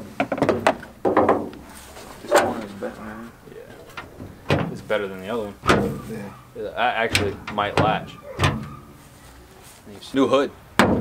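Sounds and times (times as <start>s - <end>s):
car hood slamming shut: 4.2s - 4.9s, 5.6s - 6.1s, 7.1s - 9.0s.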